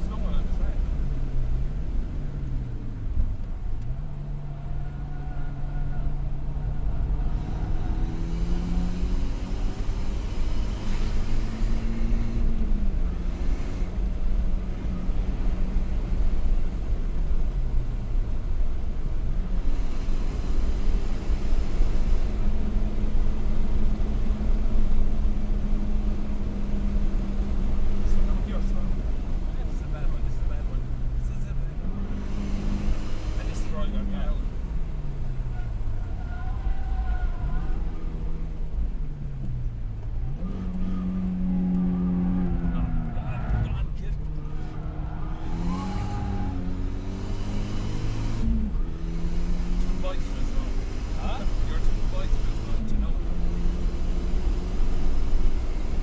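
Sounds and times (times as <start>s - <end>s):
car engine: 0.0s - 56.0s
road rumble: 0.0s - 56.0s.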